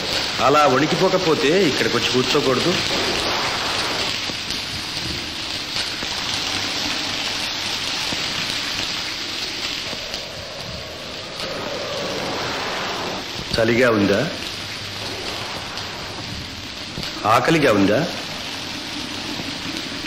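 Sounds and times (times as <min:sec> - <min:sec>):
steady rushing noise: 0:00.0 - 0:05.2, 0:09.2 - 0:19.4.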